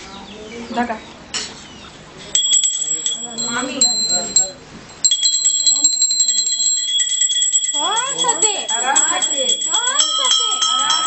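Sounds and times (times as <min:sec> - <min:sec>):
voices: 0:00.0 - 0:11.0
small brass hand bell ringing: 0:02.4 - 0:11.0.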